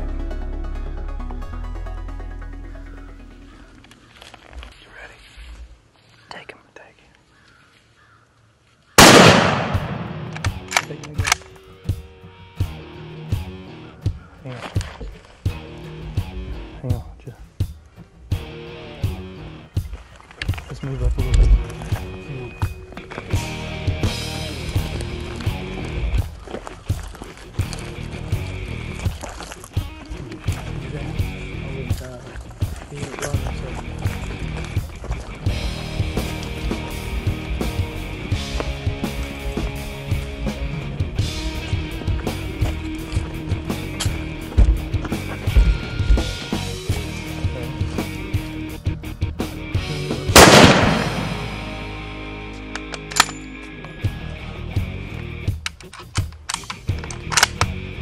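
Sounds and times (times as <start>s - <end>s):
loud rifle shot: 9.0s - 10.7s, 50.4s - 51.8s
background music with steady beat: 15.4s - 20.1s, 27.6s - 58.0s.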